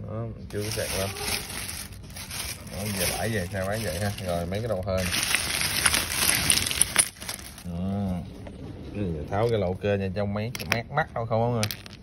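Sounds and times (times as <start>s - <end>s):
plastic bag crinkling: 0.5s - 7.8s.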